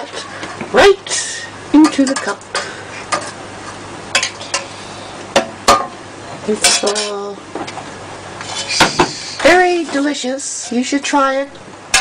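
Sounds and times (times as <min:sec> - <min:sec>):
cup and utensils clinking: 0:06.6 - 0:07.2.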